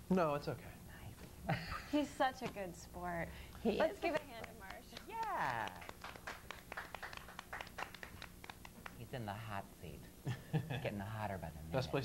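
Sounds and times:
people clapping: 0:03.8 - 0:09.1.

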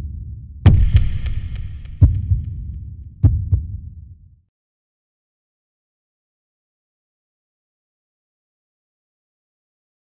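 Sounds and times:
deep bass booms: 0:00.0 - 0:04.2.

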